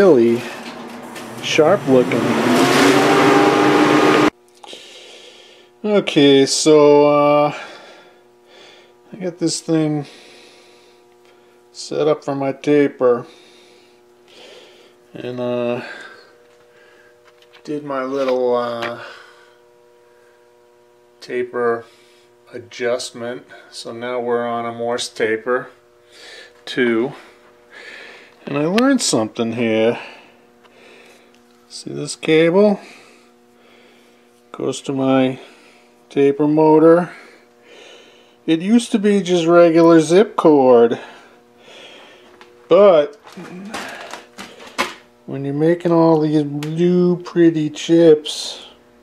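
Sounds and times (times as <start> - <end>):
faint steady machine hum: 0.0 - 2.6, 4.3 - 49.0
rustling handling noise: 42.2 - 45.1.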